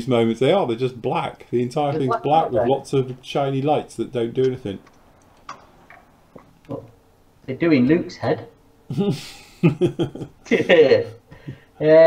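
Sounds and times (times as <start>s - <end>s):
man speaking: 0.0s - 4.8s.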